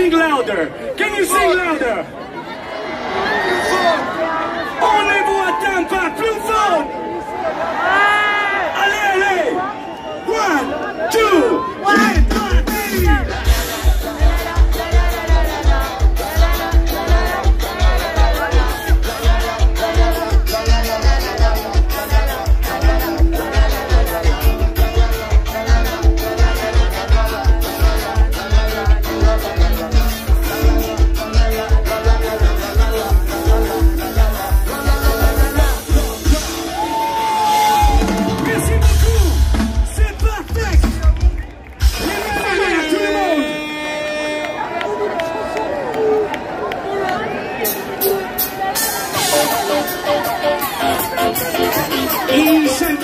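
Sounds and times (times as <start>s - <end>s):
live band playing dance music: 10.8s - 44.8s, 47.0s - 53.0s
crowd singing along: 11.6s - 37.2s, 46.8s - 53.0s.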